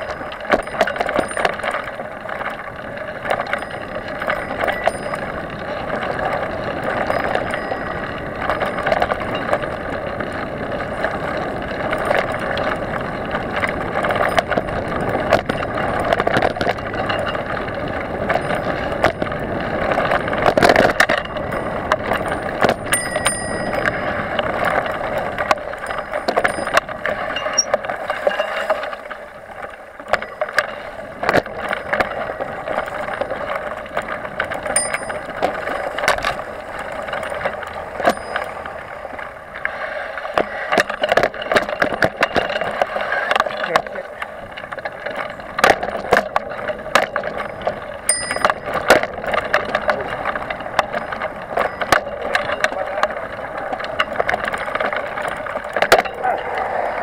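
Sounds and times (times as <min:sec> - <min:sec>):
bike knocks and rattles: 0:00.0 - 0:56.3
short high rings: 0:25.8 - 0:29.0, 0:48.1 - 0:48.6
tyre and wind rush: 0:53.4 - 0:57.0.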